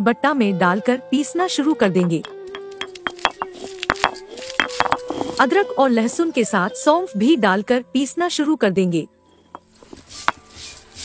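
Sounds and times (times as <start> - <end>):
stone roller grinding on stone: 2.1 - 6.3, 9.4 - 11.0.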